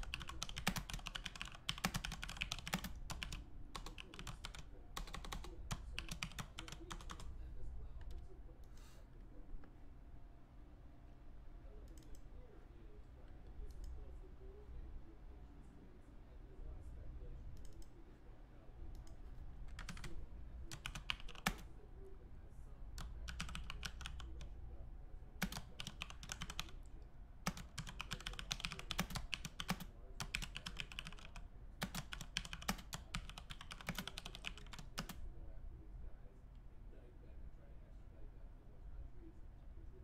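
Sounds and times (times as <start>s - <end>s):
computer keyboard typing: 0.0s - 7.3s, 18.9s - 21.7s, 23.0s - 24.5s, 25.4s - 26.8s, 27.4s - 35.2s
low steady hum: 0.0s - 40.0s.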